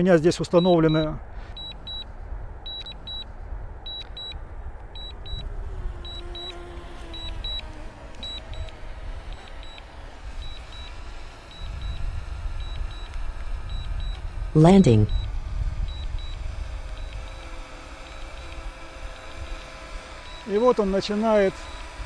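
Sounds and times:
wind rumble on microphone: 0:00.2 - 0:22.0
remote controller beeping: 0:00.6 - 0:02.1, 0:02.7 - 0:03.3, 0:03.9 - 0:04.4, 0:05.0 - 0:22.0.

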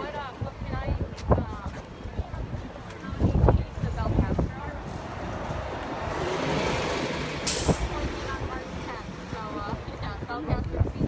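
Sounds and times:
street traffic rumble: 0:00.0 - 0:11.0
short sharp hiss: 0:07.4 - 0:07.8.

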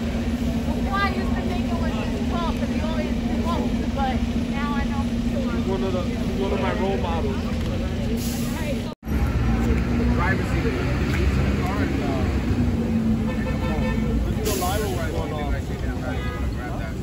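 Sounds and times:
city traffic rumble: 0:00.0 - 0:17.0
people talking: 0:00.4 - 0:17.0.

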